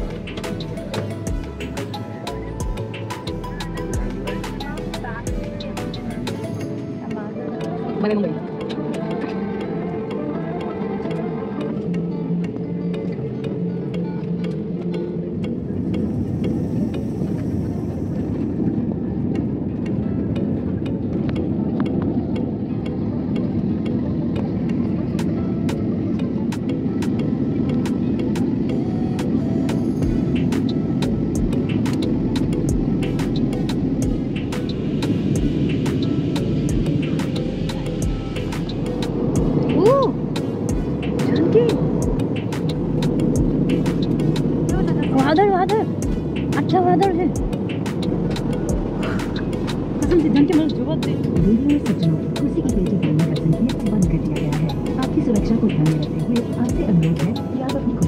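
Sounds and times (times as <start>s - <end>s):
airliner cabin drone: 0.0s - 58.0s
music: 0.0s - 58.0s.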